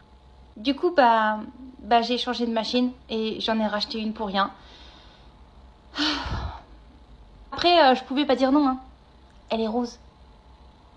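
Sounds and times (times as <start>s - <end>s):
woman sighing: 5.9s - 6.8s.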